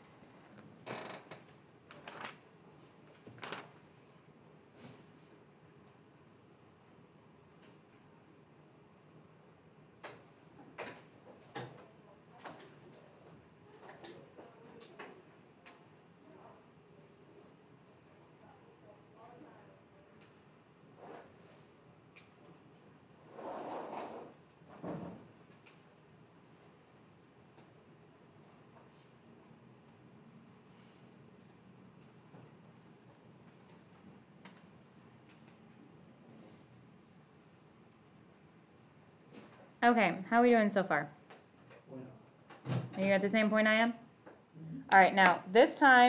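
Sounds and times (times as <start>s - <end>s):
faint clicks and taps: 31.3s - 35.6s.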